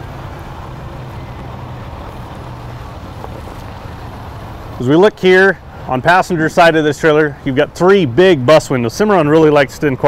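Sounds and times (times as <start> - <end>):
man talking: 4.8 - 10.0.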